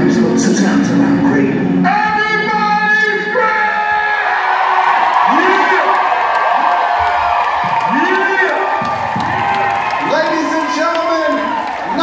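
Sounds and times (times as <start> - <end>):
crowd cheering and whooping: 3.8 - 12.0.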